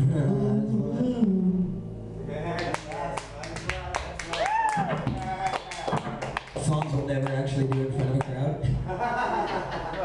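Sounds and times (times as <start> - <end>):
scattered handclaps: 2.6 - 8.4.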